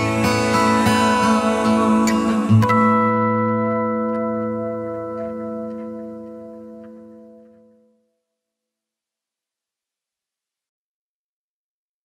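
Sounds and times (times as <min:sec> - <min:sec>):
acoustic guitar chord ringing: 0:00.0 - 0:08.4.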